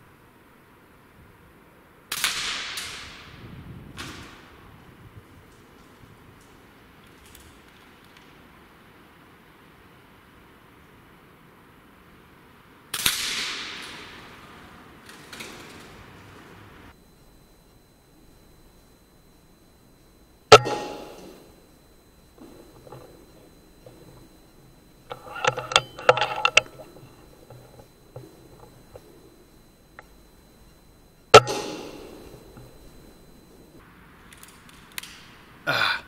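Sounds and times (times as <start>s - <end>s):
air rifle shot ringing: 20.5s - 21.4s, 31.3s - 32.8s.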